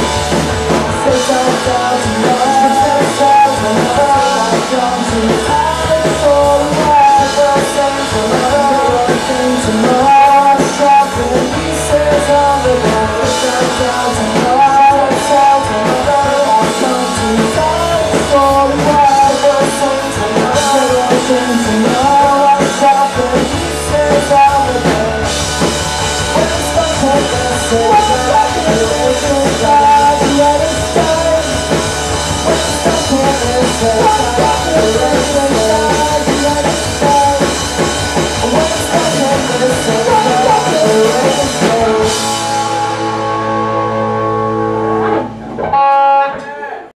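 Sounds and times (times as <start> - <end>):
electric guitars: 0.0 - 46.9
loud rock band playing: 0.0 - 46.9.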